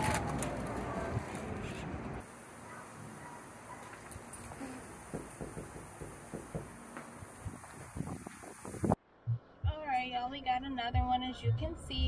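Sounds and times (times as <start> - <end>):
footsteps on concrete: 6.6 - 9.0.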